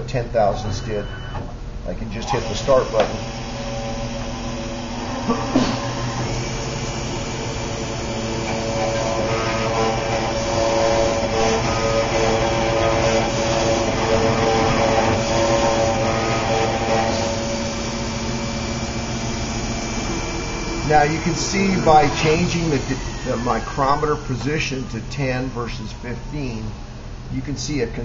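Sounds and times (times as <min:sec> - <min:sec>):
vacuum pickup running: 0:00.0 - 0:28.0
engraving machine motor whine: 0:00.4 - 0:27.2.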